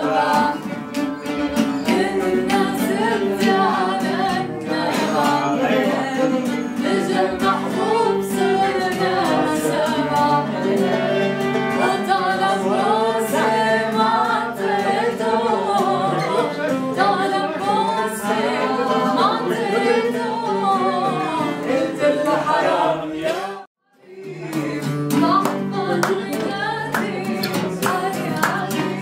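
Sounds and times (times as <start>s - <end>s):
violin: 0.0s - 23.0s
acoustic guitar: 0.0s - 29.0s
person singing: 0.0s - 29.0s.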